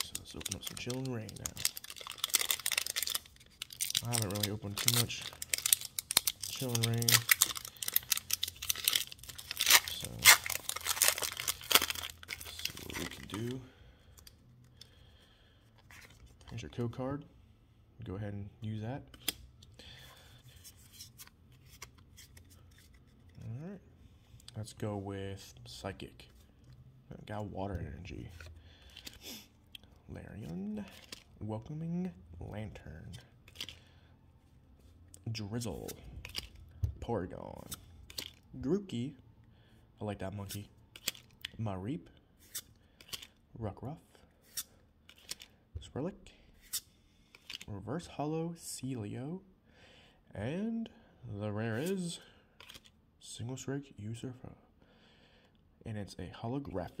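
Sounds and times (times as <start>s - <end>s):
foil wrapper tearing and crinkling: 0.0s - 13.5s.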